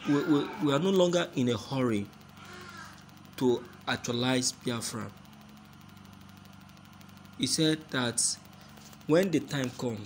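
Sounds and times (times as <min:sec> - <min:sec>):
low electrical hum: 0:00.0 - 0:10.0
fast even buzz: 0:00.4 - 0:10.0.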